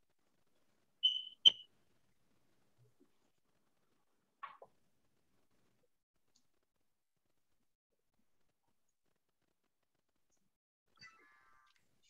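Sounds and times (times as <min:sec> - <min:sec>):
short high-pitched beeps: 0:01.0 - 0:01.6.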